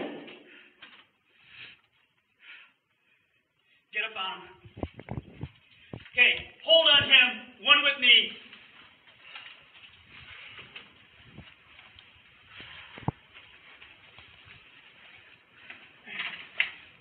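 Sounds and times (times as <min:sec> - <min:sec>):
rustling of gear on microphone: 0:04.6 - 0:07.2, 0:08.5 - 0:17.0.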